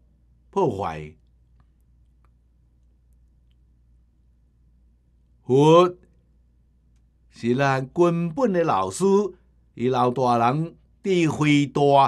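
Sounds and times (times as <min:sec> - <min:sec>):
man speaking: 0:00.5 - 0:01.2, 0:05.4 - 0:06.0, 0:07.3 - 0:12.0
faint small clicks: 0:01.2 - 0:03.7, 0:06.9 - 0:07.1.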